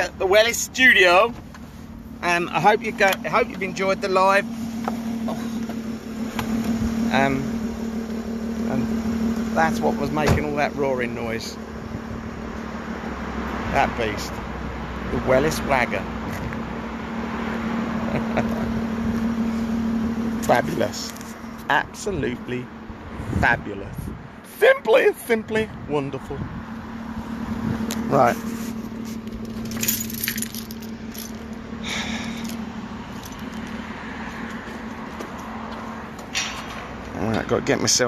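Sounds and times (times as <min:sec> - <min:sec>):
vehicle engine idling: 0:00.0 - 0:38.0
short clinks and jingles: 0:29.4 - 0:32.6.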